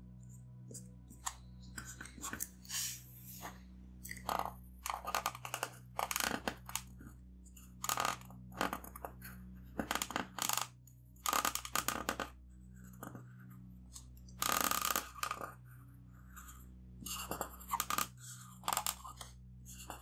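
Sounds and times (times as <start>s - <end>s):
marker scratching on paper: 1.1s - 3.6s.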